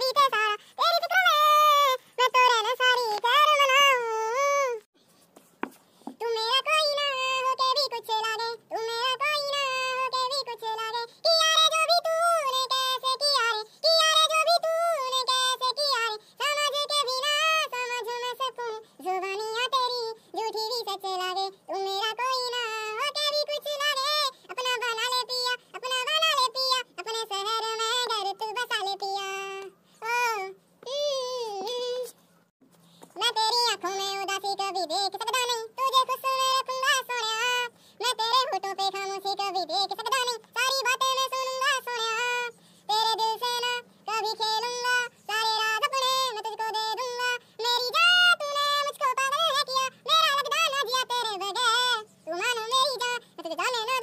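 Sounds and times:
high-pitched singing voice: 0.0 - 4.9, 5.6 - 32.3, 33.0 - 54.0.

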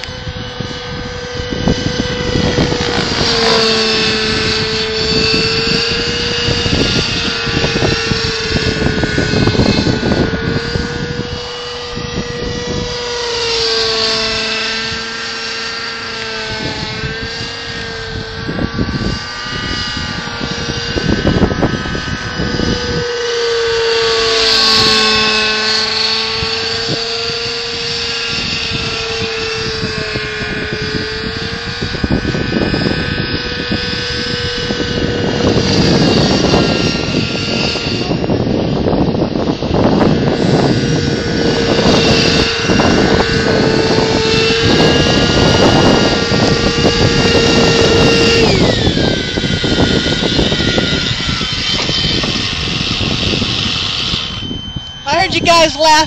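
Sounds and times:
model helicopter engine and rotor: 0.0 - 56.0.

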